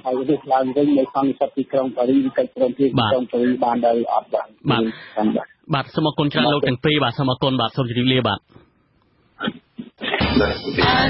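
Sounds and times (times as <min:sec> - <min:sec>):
man reading news on radio: 0:00.0 - 0:08.5.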